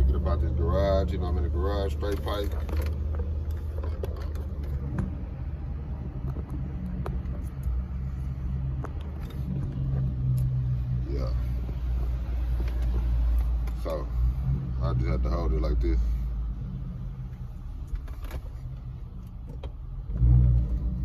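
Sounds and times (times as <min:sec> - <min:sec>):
car exhaust drone: 0:00.0 - 0:21.0.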